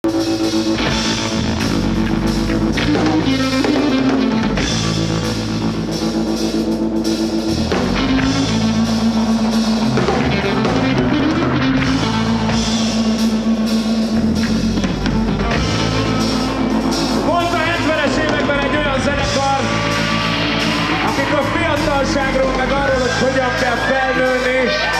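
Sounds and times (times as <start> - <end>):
drum kit: 0.0 - 24.9
electric bass: 0.0 - 24.9
electric guitar long held notes: 0.0 - 24.9.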